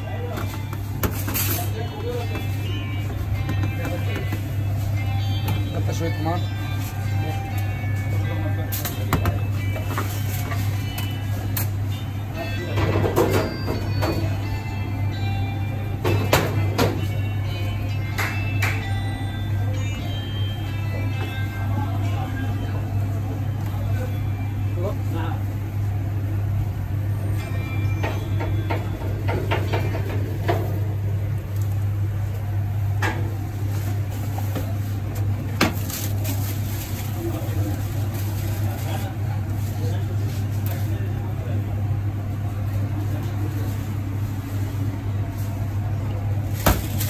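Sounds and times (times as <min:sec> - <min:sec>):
low machine hum: 0:00.0 - 0:47.0
faint voices: 0:34.6 - 0:47.0.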